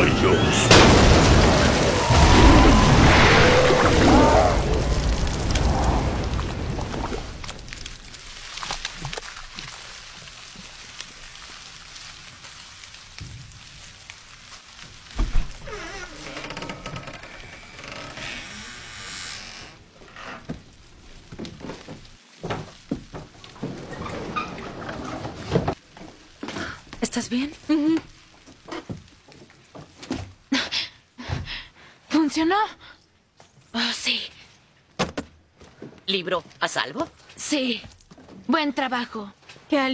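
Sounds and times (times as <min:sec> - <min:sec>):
explosion rumble: 0:00.2 - 0:07.8
wet debris dripping and splatting: 0:00.7 - 0:16.4, 0:20.4 - 0:24.3.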